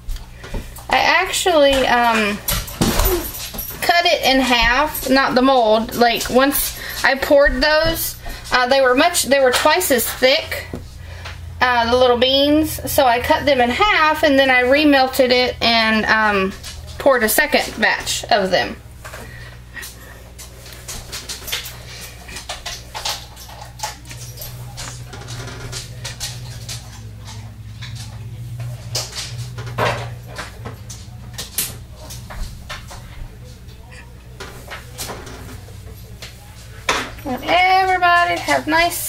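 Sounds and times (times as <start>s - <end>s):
low hum: 10.1s - 39.0s.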